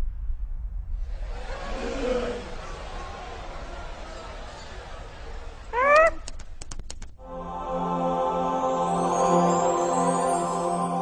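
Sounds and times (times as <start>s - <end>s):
sharp clicks: 6.0s - 7.2s.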